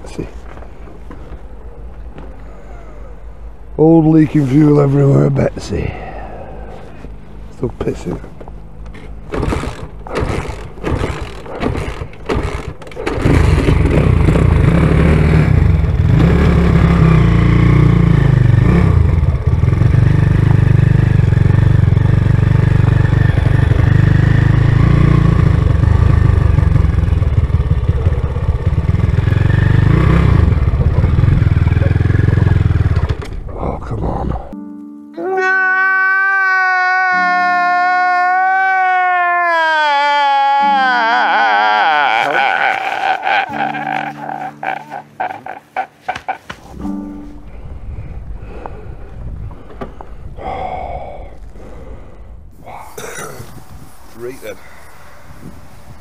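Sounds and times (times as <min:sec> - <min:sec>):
sharp engine knocks: 0:09.0 - 0:14.8
small motorcycle engine running: 0:09.3 - 0:33.4
man wailing and crying: 0:35.2 - 0:46.7
wind on microphone: 0:47.4 - 0:56.0.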